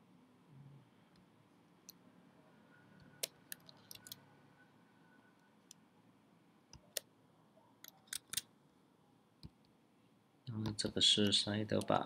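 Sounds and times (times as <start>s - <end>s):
computer mouse and keyboard clicks: 3.0s - 4.2s, 7.8s - 8.5s.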